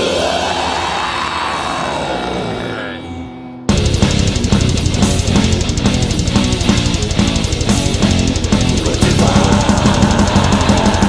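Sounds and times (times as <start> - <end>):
distorted guitar sweep: 2.5 - 11.0.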